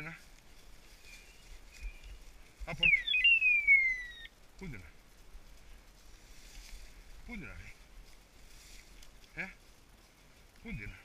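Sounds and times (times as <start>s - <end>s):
electronic chirp sweeping down: 2.8s - 4.3s.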